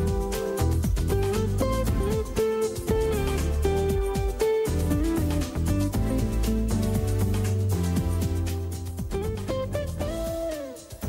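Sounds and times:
guitar plucked notes: 0.0s - 11.0s.

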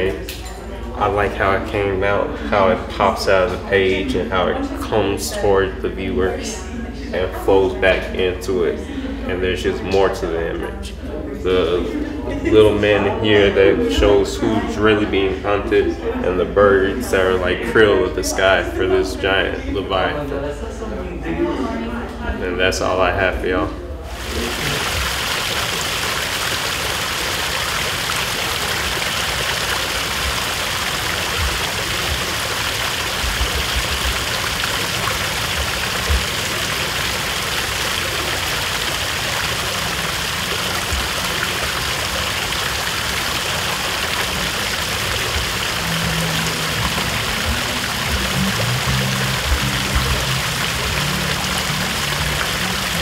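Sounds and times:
fountain water splashing: 24.1s - 53.0s
low music notes: 43.7s - 53.0s.

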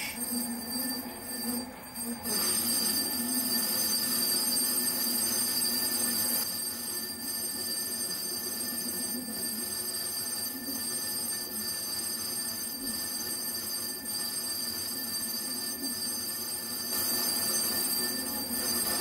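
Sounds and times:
metal lathe whining: 16.6s - 19.0s.

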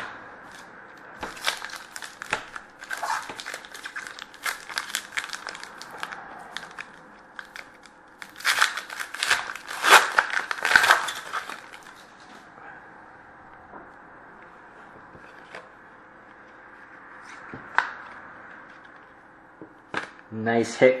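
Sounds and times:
foil wrapper crinkling and tearing: 1.2s - 12.0s.

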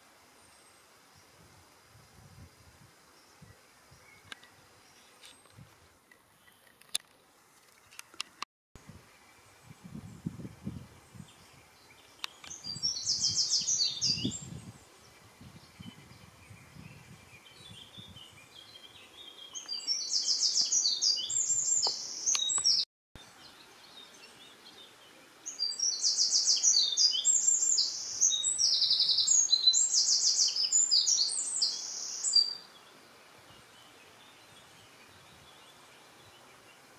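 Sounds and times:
songbird singing: 2.3s - 8.4s, 9.0s - 36.9s.

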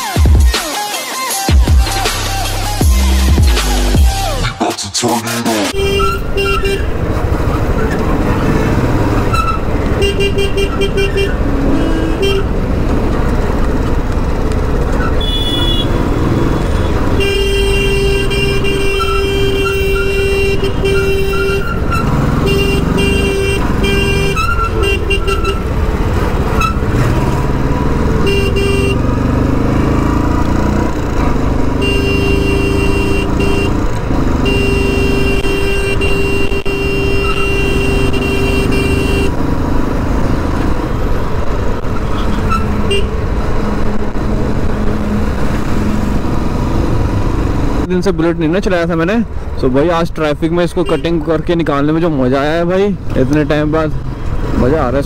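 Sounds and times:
vehicle horns honking: 5.7s - 7.2s, 9.2s - 12.6s, 15.0s - 30.8s, 31.6s - 39.4s, 42.0s - 45.8s, 50.7s - 51.4s
motorcycle engine accelerating: 5.7s - 18.8s, 21.7s - 48.0s.

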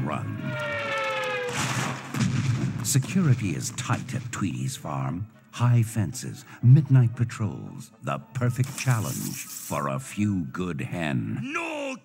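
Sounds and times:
low boom: 1.4s - 4.1s.

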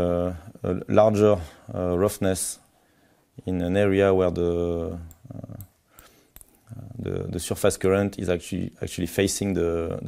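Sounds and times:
man narrating: 0.0s - 2.6s, 3.4s - 5.6s, 6.8s - 10.0s.

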